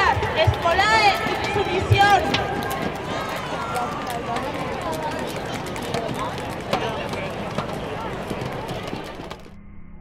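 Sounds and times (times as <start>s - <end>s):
crowd murmuring: 0.0s - 9.5s.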